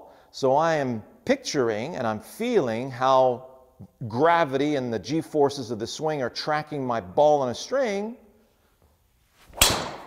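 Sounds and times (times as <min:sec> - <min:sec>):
golf club swing swish: 0:09.3 - 0:10.0
golf club striking ball: 0:09.6 - 0:10.0.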